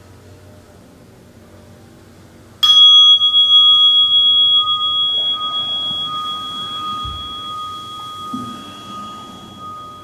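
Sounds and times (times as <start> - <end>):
meditation bell ringing: 2.6 - 10.0.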